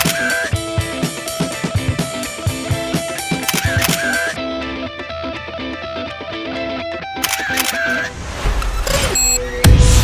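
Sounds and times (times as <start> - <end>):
camera shutter clicks: 0.0 - 0.5, 3.4 - 4.4, 7.2 - 8.1
guitar music: 0.0 - 8.2.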